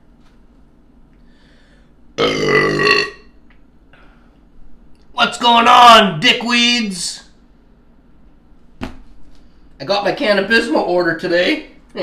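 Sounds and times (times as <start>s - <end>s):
man burping loudly: 2.2s - 3.3s.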